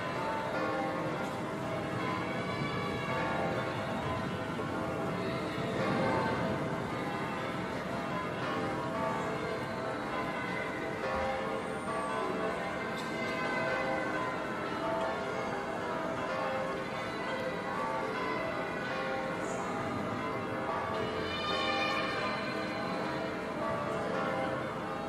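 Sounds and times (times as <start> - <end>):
church bells pealing: 0.0 - 25.0.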